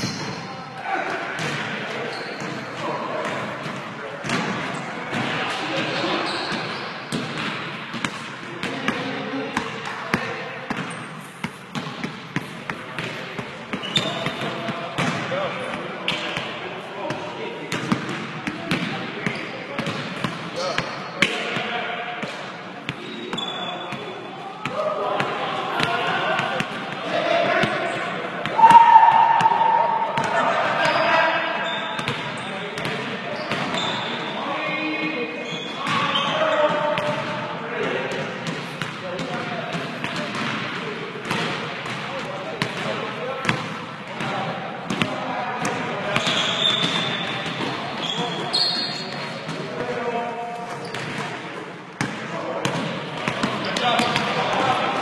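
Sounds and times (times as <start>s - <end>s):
basketballs bouncing on hardwood floor: 7.1s - 15.3s, 17.1s - 20.8s, 30.2s - 31.0s, 38.1s - 47.8s, 52.0s - 54.4s
players calling out: 23.0s - 32.5s.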